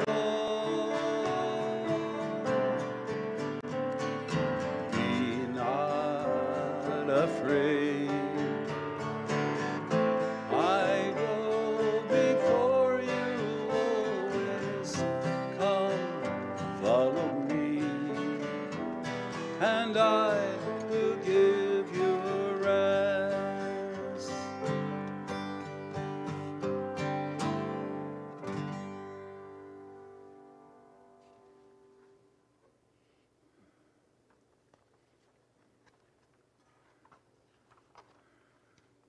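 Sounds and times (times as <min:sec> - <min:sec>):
acoustic guitar playing: 0:00.0 - 0:32.2.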